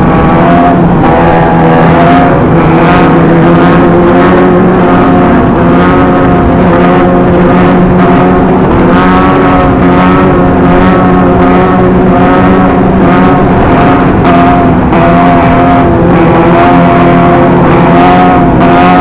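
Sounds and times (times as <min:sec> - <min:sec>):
motorcycle engines at high revs: 0:00.0 - 0:19.0
wind and road noise: 0:00.0 - 0:19.0.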